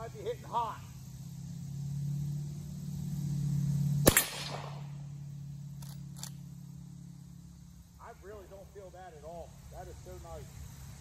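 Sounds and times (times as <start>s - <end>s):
rifle shot with echo: 4.0s - 5.0s.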